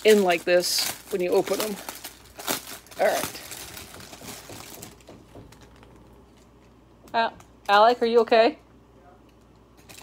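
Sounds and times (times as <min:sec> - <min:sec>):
plastic bags crinkling: 0:00.0 - 0:06.7.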